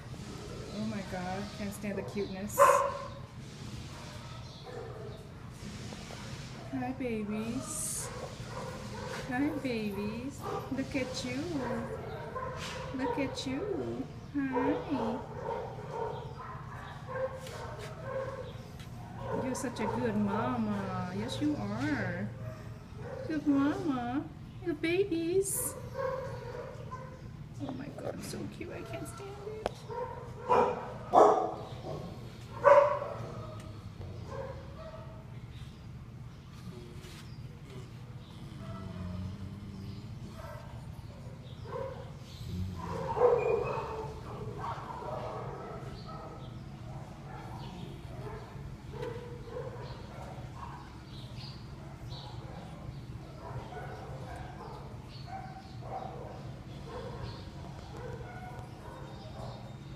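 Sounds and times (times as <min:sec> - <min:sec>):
puppies calling: 0:00.7 - 0:03.3, 0:07.3 - 0:24.1, 0:25.6 - 0:27.5, 0:28.2 - 0:36.5, 0:40.0 - 0:59.9
puppies whimpering: 0:41.2 - 0:51.0.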